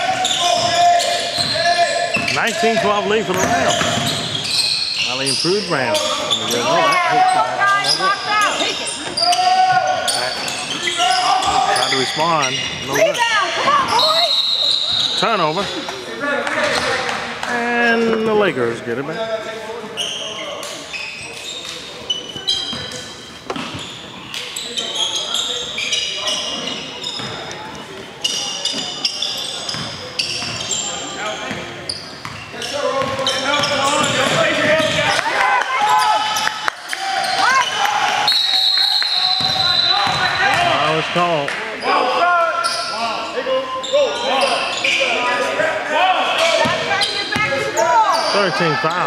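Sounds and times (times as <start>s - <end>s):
sneakers squeaking: 0.0s - 17.3s, 19.4s - 41.2s, 41.8s - 49.0s
players calling out: 0.0s - 19.2s
basketball bouncing: 3.3s - 4.4s, 33.0s - 35.1s.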